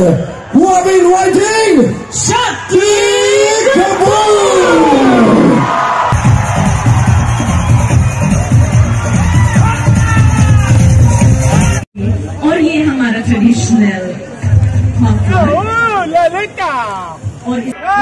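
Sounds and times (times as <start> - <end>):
crowd cheering: 0.1 - 11.8
live band music with heavy bass: 6.2 - 11.9.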